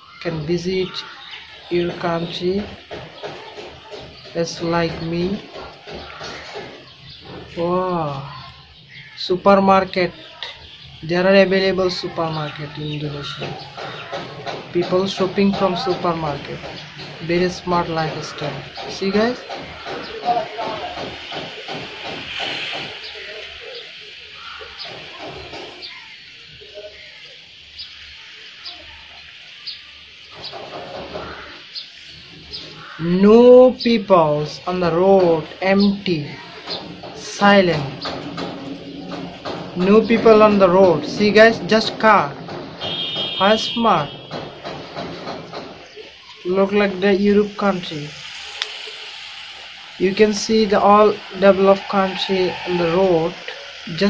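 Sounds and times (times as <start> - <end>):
bird chirping: 0.0 - 54.0
faint voices: 0.0 - 54.0
steady background hiss: 6.8 - 54.0.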